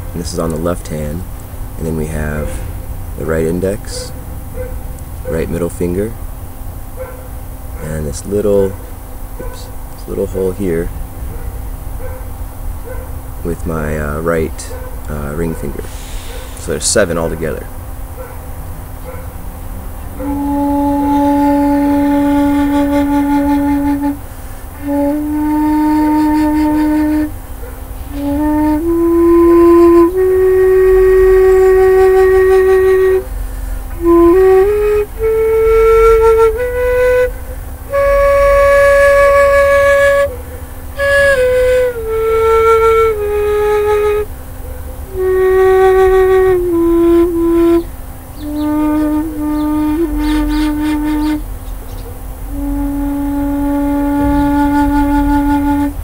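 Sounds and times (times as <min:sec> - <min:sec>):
bamboo flute slow melody: 0:20.1 - 0:56.0.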